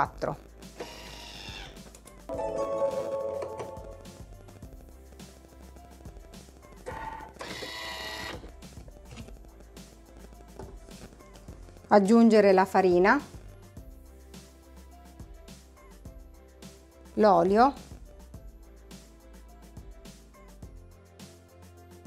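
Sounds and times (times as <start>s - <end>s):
background music: 0.0s - 22.0s.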